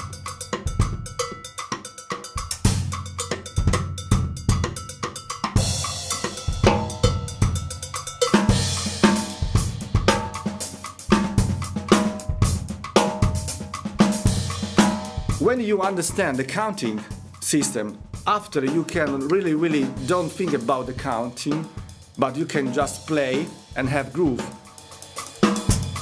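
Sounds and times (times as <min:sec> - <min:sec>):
drum kit groove: 0:00.0 - 0:26.0.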